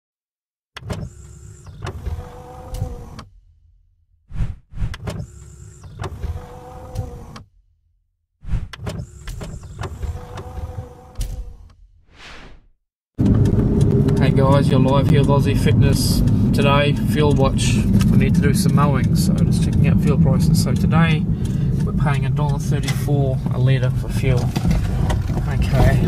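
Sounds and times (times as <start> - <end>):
mechanical whirring: 0.8 - 3.4, 4.3 - 7.6, 8.5 - 11.9
short whoosh: 4.3 - 5.0, 12.0 - 12.8.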